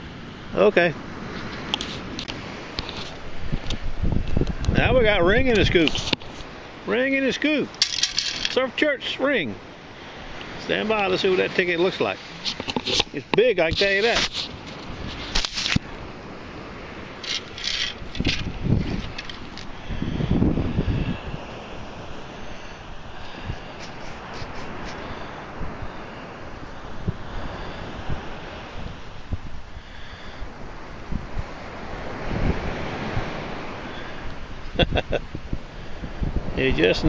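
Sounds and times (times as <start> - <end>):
beach surf: 0.0 - 37.0
wind buffeting microphone: 1.0 - 8.9, 9.6 - 37.0
handling clicks and rattles: 7.7 - 8.6, 17.2 - 19.7.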